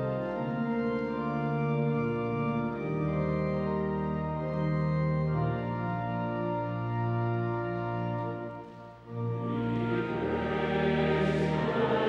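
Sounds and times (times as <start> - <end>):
pipe organ playing a hymn: 0.0 - 12.0.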